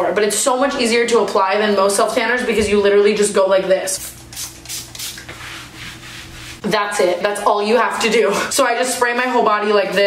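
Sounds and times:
spray bottle hissing sprays: 0:04.0 - 0:06.4.

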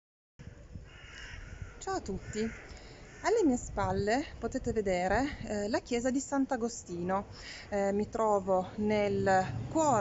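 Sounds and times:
wind rumble on microphone: 0:00.4 - 0:07.2, 0:07.8 - 0:10.0
woman speaking: 0:01.8 - 0:02.6, 0:03.2 - 0:10.0.

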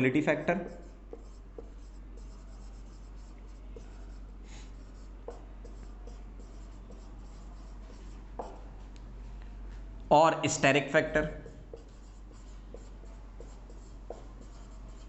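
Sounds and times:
steady low hum: 0:00.0 - 0:15.0
marker pen scratching on whiteboard: 0:00.6 - 0:08.6, 0:11.3 - 0:15.0
marker pen taps: 0:05.3 - 0:05.8, 0:08.4 - 0:08.6, 0:12.8 - 0:14.3.

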